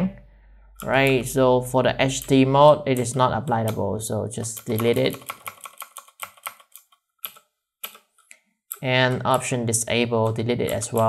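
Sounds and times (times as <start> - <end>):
keyboard keystrokes: 2.0 - 9.5.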